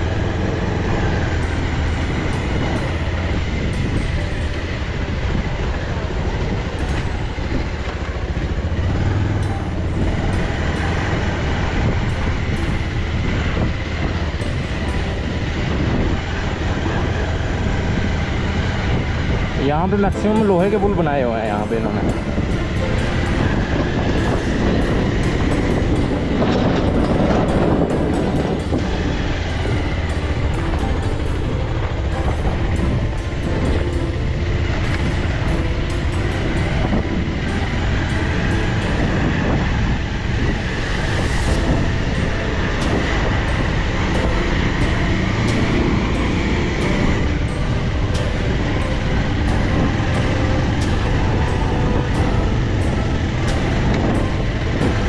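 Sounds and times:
motorcycle riding: 0:00.0 - 0:55.0
wind noise on microphone: 0:00.0 - 0:55.0.

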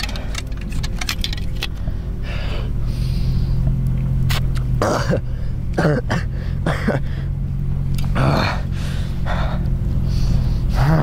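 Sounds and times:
gear clicking and rattling: 0:00.0 - 0:02.2
steady low rumble: 0:00.0 - 0:11.0
strained breaths or groans: 0:08.0 - 0:11.0.

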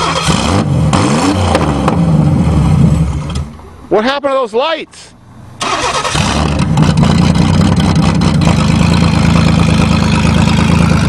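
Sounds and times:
car engine running: 0:05.6 - 0:11.0.

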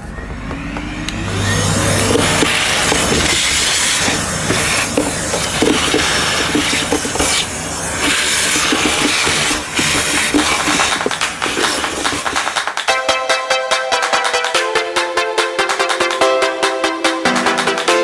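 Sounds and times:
handheld vacuum suction hiss: 0:01.9 - 0:12.7.

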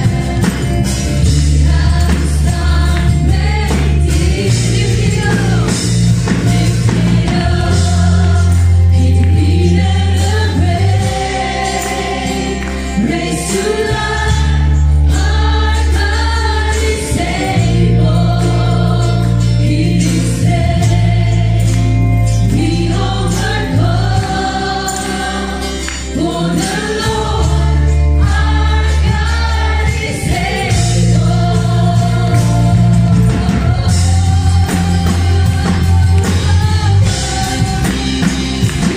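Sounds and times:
live band playing: 0:00.0 - 0:38.9
singers in chorus: 0:00.0 - 0:38.9.

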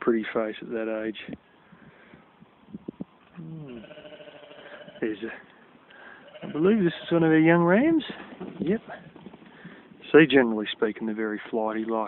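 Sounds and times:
sheep bleating: 0:03.4 - 0:05.2, 0:06.1 - 0:07.4.

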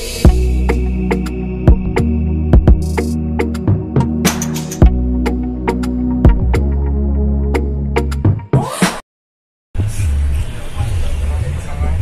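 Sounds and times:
road traffic noise: 0:09.8 - 0:12.0.

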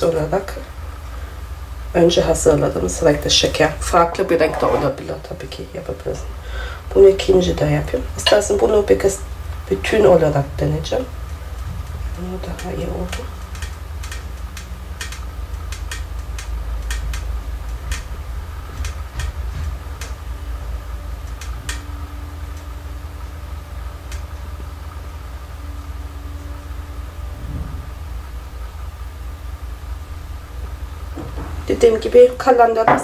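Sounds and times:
low background rumble: 0:00.0 - 0:33.0
light clicks and taps: 0:11.3 - 0:18.1.

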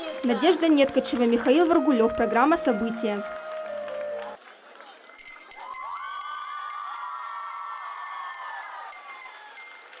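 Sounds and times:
crowd cheering: 0:00.0 - 0:10.0
hand bell ringing: 0:05.2 - 0:10.0.

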